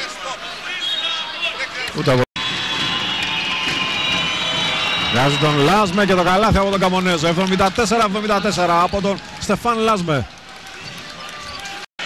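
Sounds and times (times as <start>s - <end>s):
arena crowd noise: 0.0s - 11.9s.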